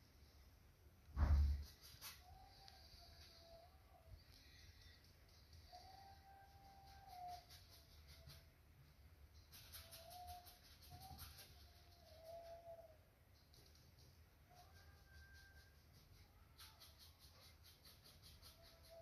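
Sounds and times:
faint whining tones: 0.0 - 16.8.

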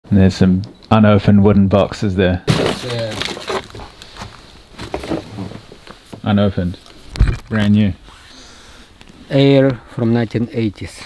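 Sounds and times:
small knocks and scrapes: 2.5 - 8.2
paper rustling: 2.6 - 5.6.

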